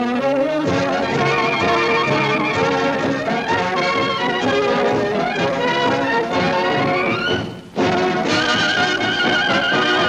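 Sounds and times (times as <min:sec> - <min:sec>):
orchestral film music: 0:00.0 - 0:10.0.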